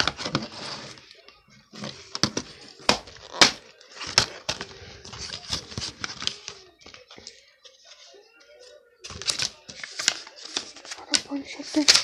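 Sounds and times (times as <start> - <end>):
paper rustling: 0.0 - 8.1, 9.0 - 12.0.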